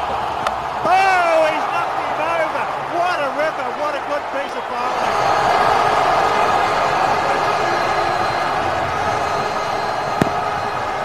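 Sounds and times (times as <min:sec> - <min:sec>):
man shouting: 0:00.8 - 0:04.0.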